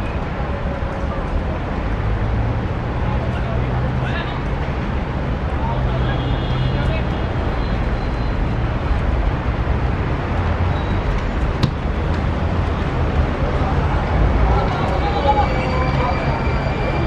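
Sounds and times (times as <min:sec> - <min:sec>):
sharp knock: 0:11.6 - 0:11.9.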